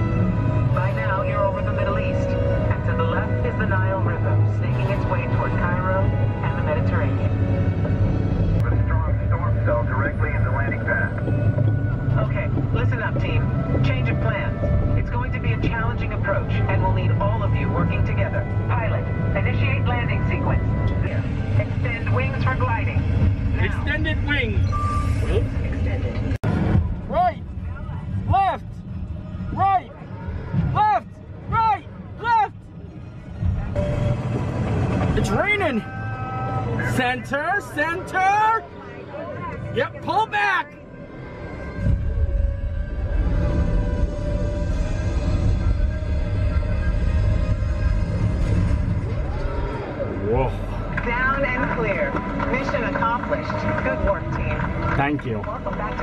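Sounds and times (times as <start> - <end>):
low spacecraft rumble: 0.0 - 40.0, 40.7 - 56.0
music: 0.0 - 56.0.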